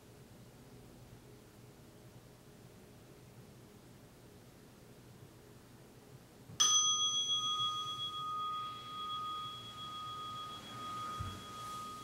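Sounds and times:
meditation bell ringing: 6.6 - 12.0.

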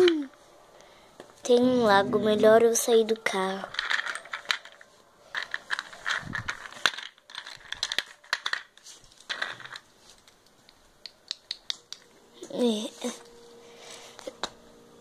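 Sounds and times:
objects being handled: 3.1 - 13.5.

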